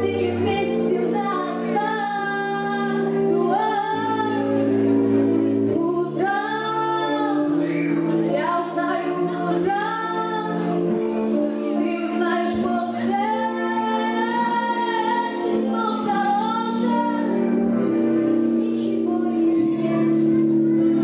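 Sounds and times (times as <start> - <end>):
woman singing with vibrato: 0.0 - 5.0, 5.6 - 7.6, 8.3 - 10.9, 11.8 - 20.1.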